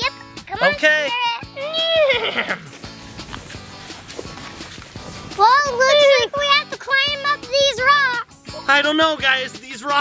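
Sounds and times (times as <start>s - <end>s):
background music: 0.0s - 10.0s
children's footsteps on lawn: 1.8s - 8.0s.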